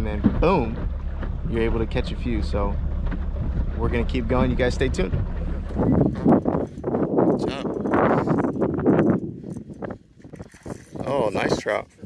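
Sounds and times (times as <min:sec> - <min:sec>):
water slapping against boat hull: 0:00.0 - 0:12.0
wind noise: 0:00.0 - 0:12.0.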